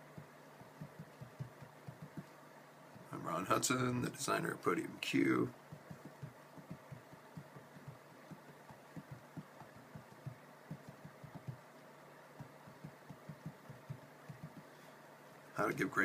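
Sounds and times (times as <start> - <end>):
fingertip taps on touchscreen: 0.2 - 2.3, 5.7 - 11.6, 12.4 - 14.7.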